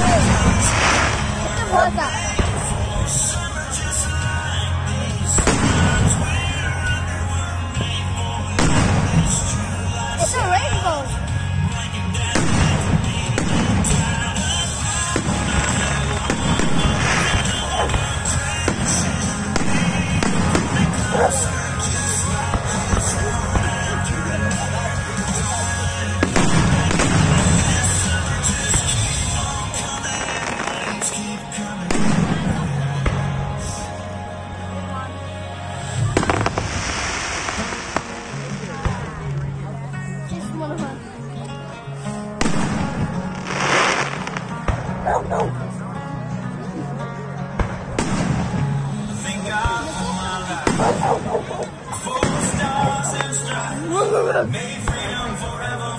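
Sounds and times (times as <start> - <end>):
fireworks bursting: 0.0 - 4.3, 5.2 - 6.6, 8.6 - 10.9, 12.2 - 25.5, 26.1 - 33.9, 35.8 - 39.4, 42.4 - 45.0, 47.6 - 53.7
loud music: 0.0 - 55.9.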